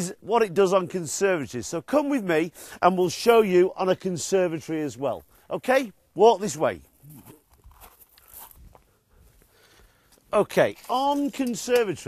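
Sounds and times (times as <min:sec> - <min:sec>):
crunching footsteps: 0:06.8 - 0:12.0.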